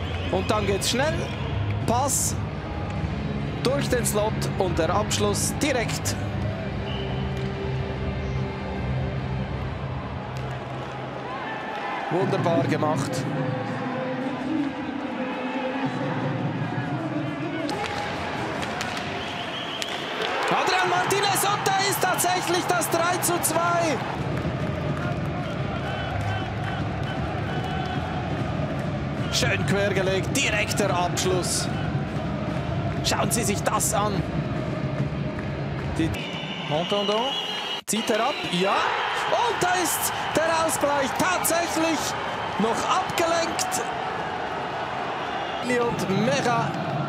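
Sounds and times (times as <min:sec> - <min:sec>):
man commentating: 0:20.5 - 0:24.1, 0:37.9 - 0:43.9
crowd singing and chanting: 0:31.6 - 0:33.0.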